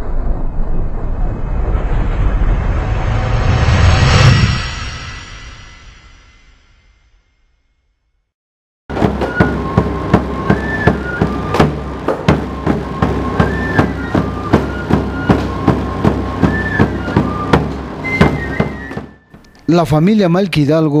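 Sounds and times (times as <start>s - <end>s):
drum beats: 8.9s - 19.8s
flutes playing a melody: 9.0s - 19.9s.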